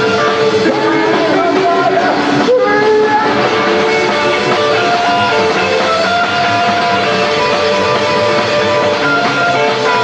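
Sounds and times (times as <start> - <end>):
ringing band instrument notes: 0.0 - 10.0.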